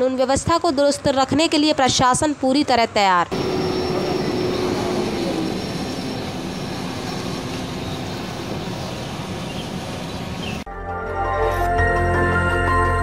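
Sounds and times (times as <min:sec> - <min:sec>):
outdoor background noise: 0:00.0 - 0:10.7
quadcopter drone buzzing: 0:03.3 - 0:10.6.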